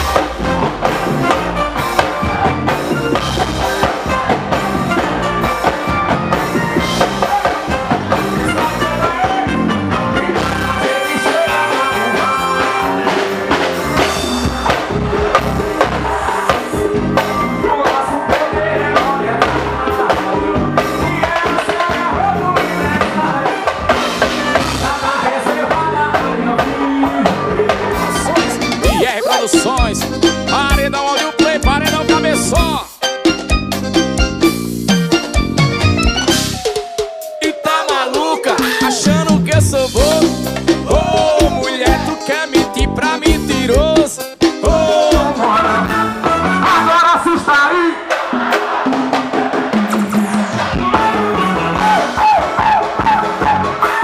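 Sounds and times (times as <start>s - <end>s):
driving drum beat: 0.0s - 54.0s
live band music: 0.0s - 54.0s.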